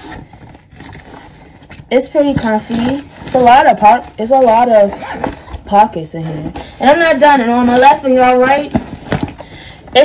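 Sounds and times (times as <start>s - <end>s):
nylon bag rustling: 0.0s - 9.4s.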